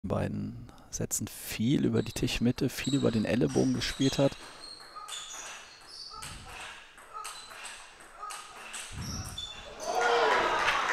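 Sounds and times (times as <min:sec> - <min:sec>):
table tennis ball hits: 0:03.6 - 0:09.4
crowd applause: 0:09.7 - 0:10.9.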